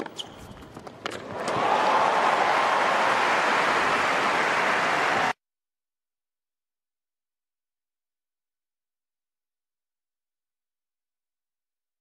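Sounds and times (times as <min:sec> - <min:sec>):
crowd applause and cheering: 0:01.2 - 0:05.4.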